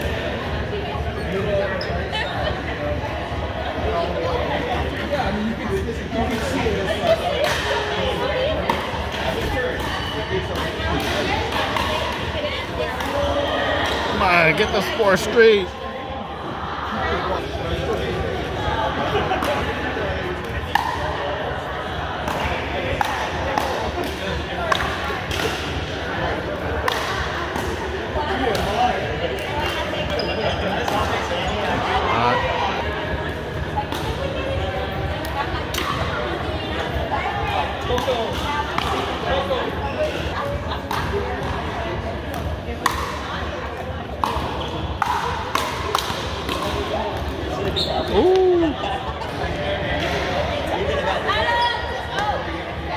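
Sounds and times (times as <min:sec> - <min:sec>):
background chatter: 0:00.0 - 0:52.9
squeal: 0:30.1 - 0:30.6, 0:47.7 - 0:48.1.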